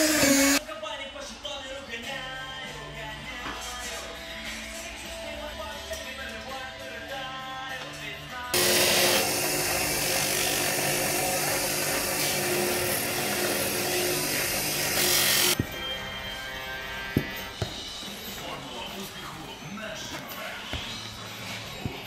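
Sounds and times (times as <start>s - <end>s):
bench grinder motor running: 0.0s - 0.6s, 8.6s - 15.6s.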